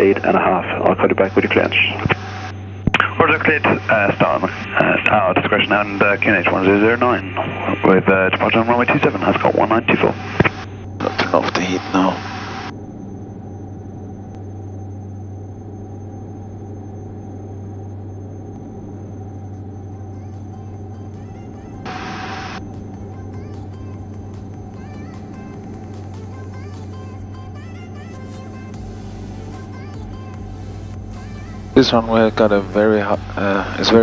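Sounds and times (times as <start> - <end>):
aircraft engines droning: 0.0 - 34.0
background music: 20.3 - 34.0.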